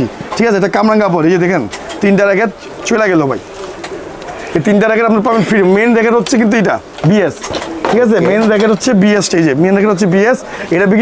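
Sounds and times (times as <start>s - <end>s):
man talking: 0.0s - 3.4s, 4.4s - 11.0s.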